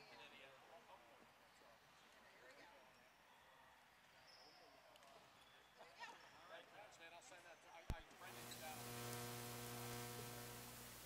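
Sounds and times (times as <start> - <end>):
electrical hum with hiss: 8.2 - 11.0.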